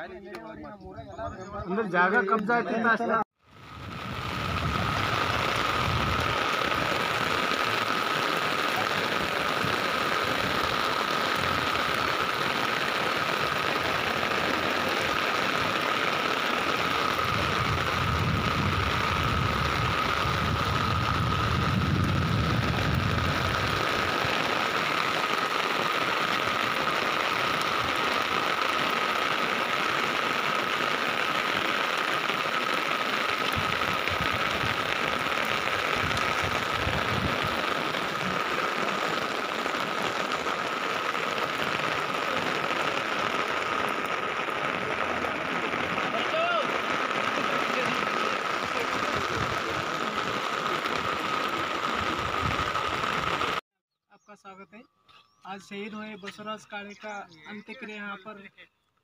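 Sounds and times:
heavy rain on umbrella: 0:03.4 - 0:53.6.

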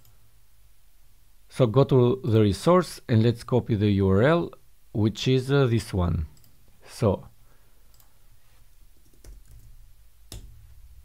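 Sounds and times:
computer keyboard keystrokes: 0:09.0 - 0:10.6.

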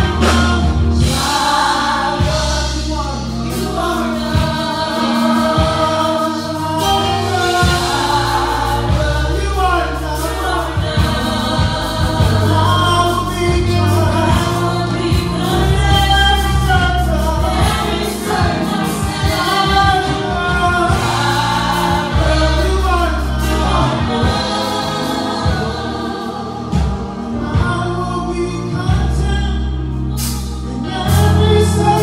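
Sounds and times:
backing singers: 0:00.0 - 0:29.5
bass line: 0:00.0 - 0:32.0
drums: 0:00.0 - 0:32.0
man singing lead: 0:27.2 - 0:29.8, 0:30.7 - 0:32.0.

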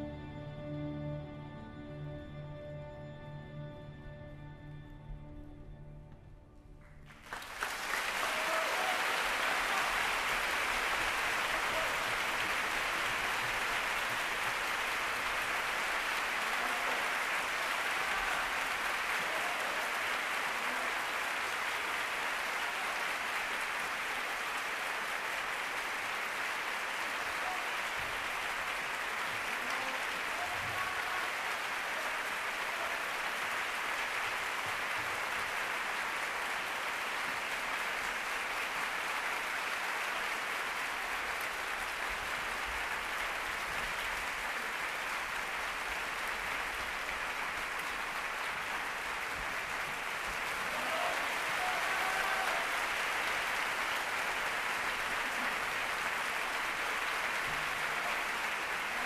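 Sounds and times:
audience applauding: 0:06.8 - 0:59.0.

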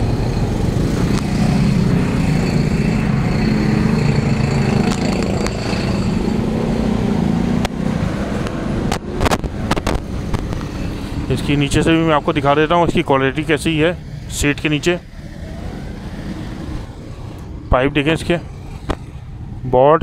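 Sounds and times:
vehicle engine humming: 0:00.0 - 0:20.0.

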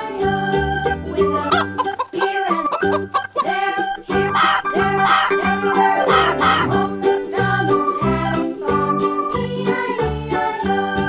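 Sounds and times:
children's song backing track: 0:00.0 - 0:11.0
chickens clucking: 0:00.2 - 0:11.0.

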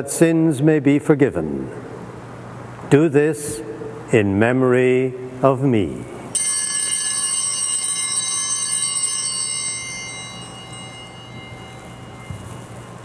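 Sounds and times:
altar bells ringing: 0:06.3 - 0:13.0.

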